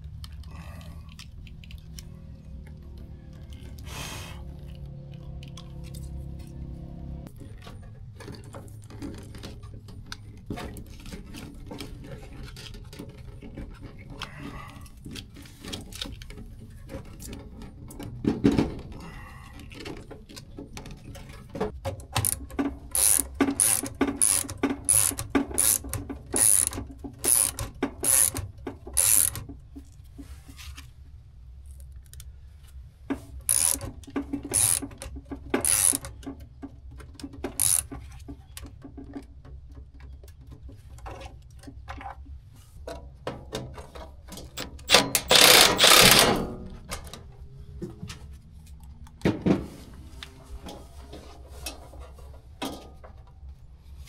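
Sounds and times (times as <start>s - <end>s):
low steady rumble: 0.0s - 8.0s.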